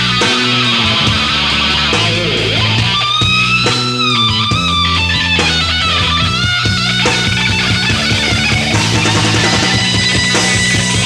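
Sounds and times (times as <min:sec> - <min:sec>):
bass guitar: 0:00.0 - 0:11.0
distorted electric guitar: 0:00.0 - 0:11.0
drums: 0:00.0 - 0:11.0
lead guitar notes bending: 0:00.0 - 0:11.0.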